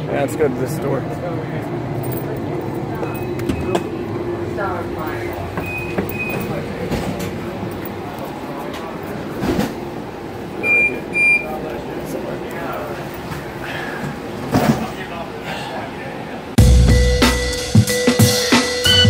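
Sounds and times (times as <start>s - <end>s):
indistinct voices: 0.0s - 16.6s
train electric hum: 0.0s - 16.6s
short paired electronic beeps: 5.6s - 6.5s, 10.6s - 11.5s.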